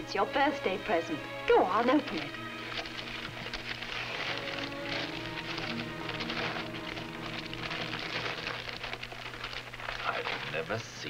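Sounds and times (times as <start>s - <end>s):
soft background music: 0.0s - 11.0s
wrapping paper rustling: 1.7s - 11.0s.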